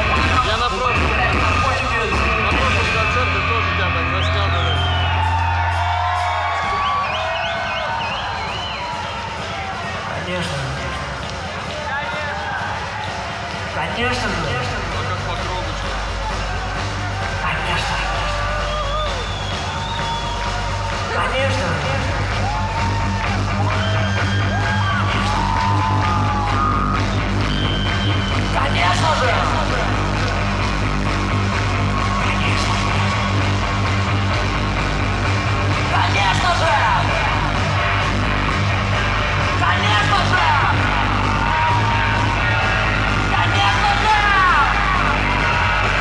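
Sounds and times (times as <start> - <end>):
heavy low bass: 0.0 - 7.2, 13.9 - 46.0
rock band playing: 0.0 - 46.0.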